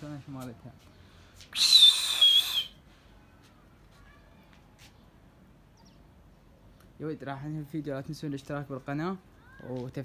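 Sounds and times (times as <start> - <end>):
person whistling shrilly: 1.5 - 2.8
faint bird chirps: 1.7 - 6.8.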